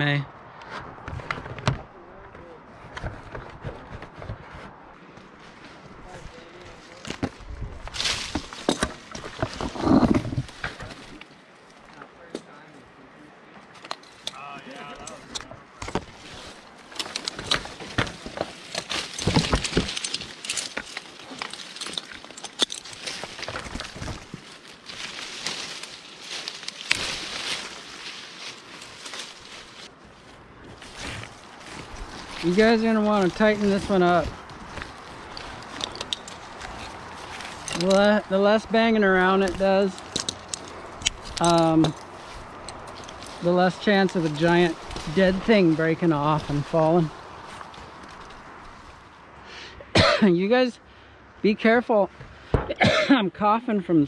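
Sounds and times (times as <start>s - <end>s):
leaves and branches rustling: 0.0s - 49.6s
climbing gear clattering: 6.4s - 11.3s, 13.8s - 29.9s, 30.7s - 49.0s.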